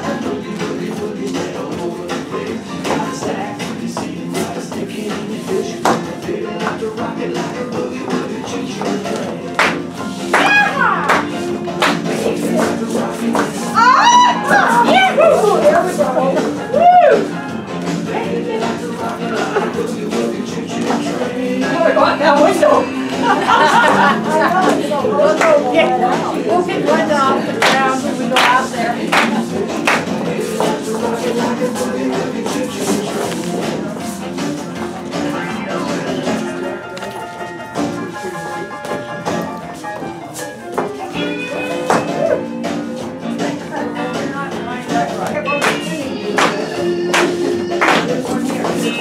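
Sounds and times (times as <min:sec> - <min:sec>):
line-dance music: 0:00.0 - 0:49.0
hands clapping in time: 0:11.1 - 0:12.0, 0:27.6 - 0:30.1, 0:45.6 - 0:48.2.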